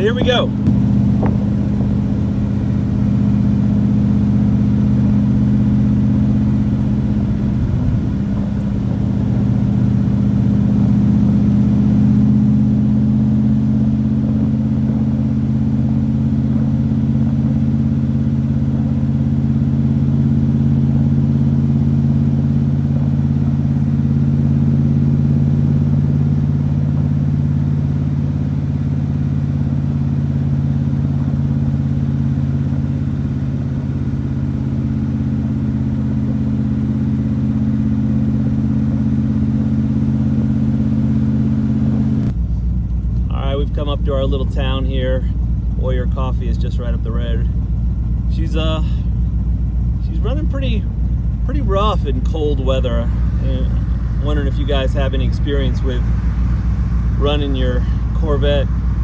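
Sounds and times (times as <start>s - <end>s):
car engine running steadily: 0.0s - 59.0s.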